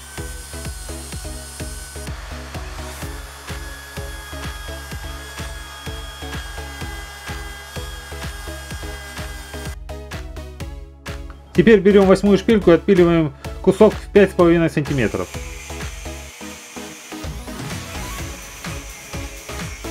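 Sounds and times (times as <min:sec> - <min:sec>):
power drill whine grinding steel: 0:00.0 - 0:09.8, 0:14.8 - 0:19.9
background music with steady beat: 0:00.0 - 0:19.9.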